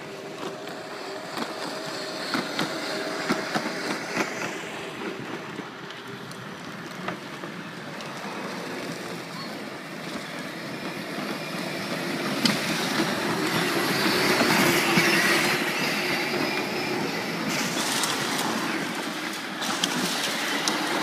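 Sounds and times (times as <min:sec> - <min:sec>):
electric motors whining: 0:00.0 - 0:21.0
plastic wheels rumbling on concrete: 0:00.0 - 0:21.0.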